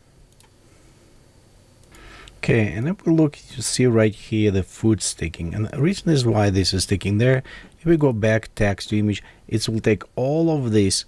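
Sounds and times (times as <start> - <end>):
low steady room hum: 0.0 - 11.0.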